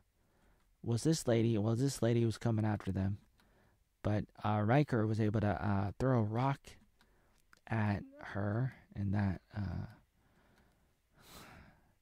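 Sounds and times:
faint breath: 0.2s - 0.8s, 3.4s - 3.9s, 7.0s - 7.4s, 9.8s - 12.0s.

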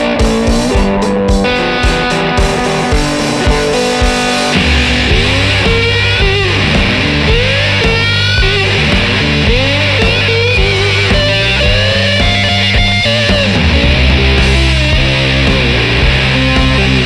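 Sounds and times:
fuzz slide guitar blues: 0.0s - 17.0s.

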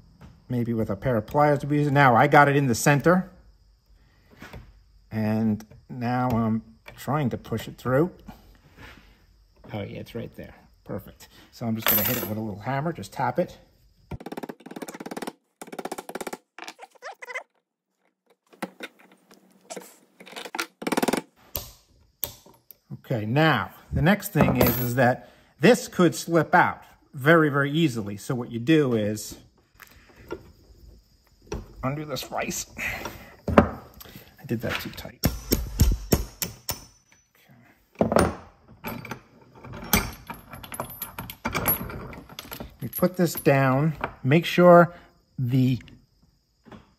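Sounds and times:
chain links clinking: 11.8s - 12.5s, 38.8s - 43.9s
small hammer tapping metal pin: 35.5s - 37.2s.

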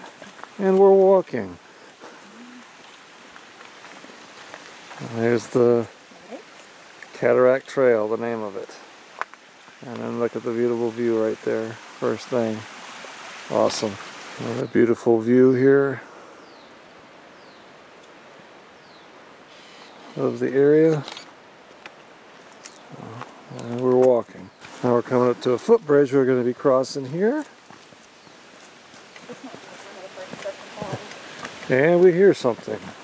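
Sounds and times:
faint rushing hiss: 0.0s - 33.0s.

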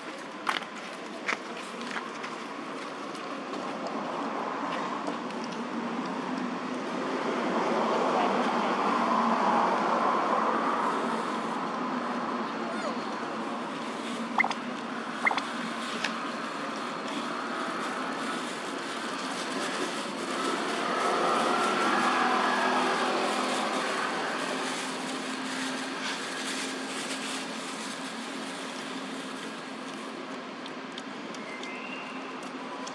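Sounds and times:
vehicle engine passing by: 19.3s - 27.8s.

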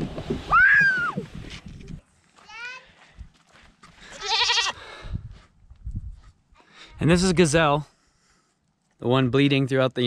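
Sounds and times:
goat bleating: 4.1s - 4.8s.

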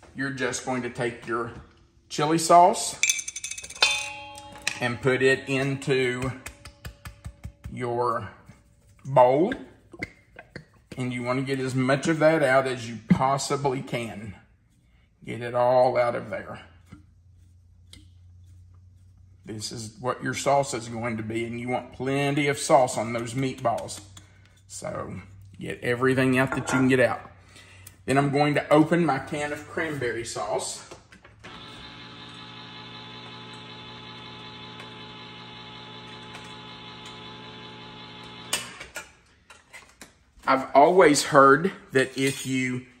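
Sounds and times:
electric can opener motor: 31.4s - 39.0s.

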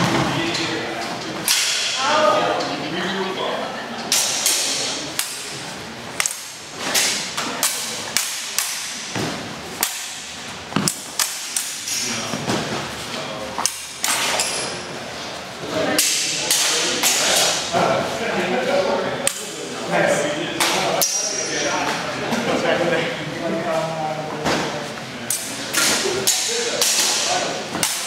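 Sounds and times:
practice swords clashing: 1.4s - 2.1s, 4.1s - 5.5s, 6.2s - 12.1s, 15.9s - 17.7s, 20.6s - 21.5s, 25.3s - 28.0s.

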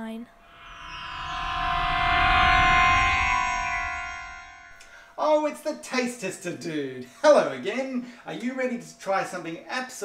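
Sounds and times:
transporter beam sound effect: 0.4s - 4.8s.

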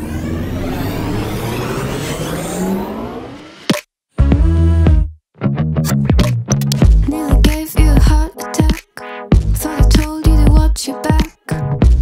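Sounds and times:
low hum: 0.0s - 3.7s
tone rising in pitch: 0.0s - 3.7s.

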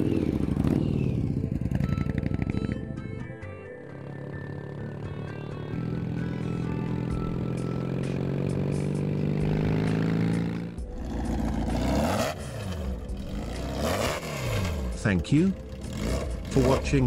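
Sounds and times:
engine notes rising and falling: 0.0s - 3.2s, 4.4s - 17.0s
motorcycle engine running: 0.0s - 17.0s.

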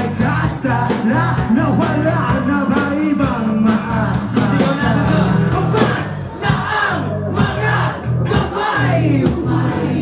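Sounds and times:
crowd singing along: 0.0s - 10.0s
live rock band playing: 0.0s - 10.0s.

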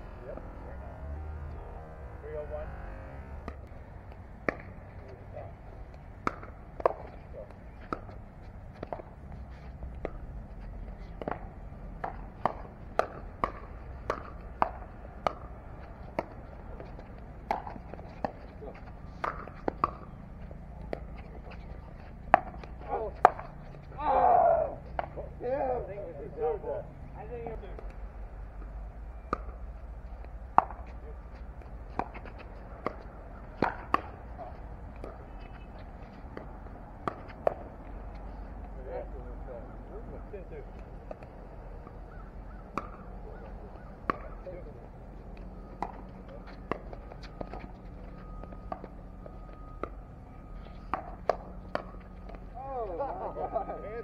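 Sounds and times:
paddles hitting plastic ball: 3.4s - 4.8s, 5.9s - 8.2s, 11.2s - 21.2s, 22.2s - 23.6s, 30.3s - 35.7s, 36.3s - 37.9s, 42.6s - 44.4s, 50.9s - 52.5s.

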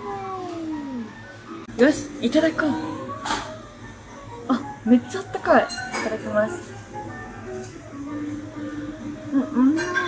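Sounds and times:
long meow-like cry: 0.0s - 1.2s
background music: 0.0s - 10.0s.

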